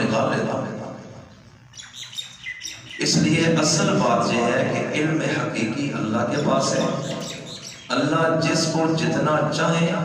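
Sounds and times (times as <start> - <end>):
birds chirping: 1.0 - 5.0, 5.7 - 9.1.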